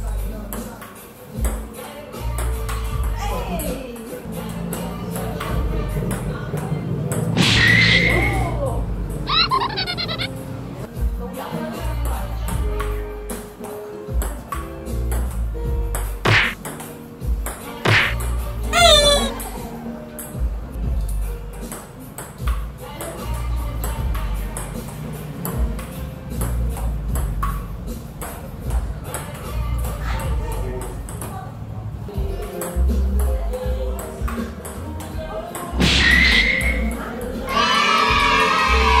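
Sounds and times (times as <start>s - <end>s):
voices: 1.7s - 12.6s, 17.7s - 20.2s
music with heavy bass beat: 15.6s - 16.6s, 17.2s - 19.4s.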